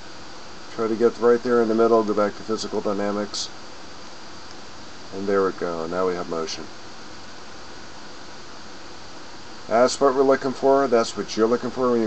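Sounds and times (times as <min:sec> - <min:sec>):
faint high whine: 0:00.0 - 0:12.0
recording hiss: 0:00.0 - 0:12.0.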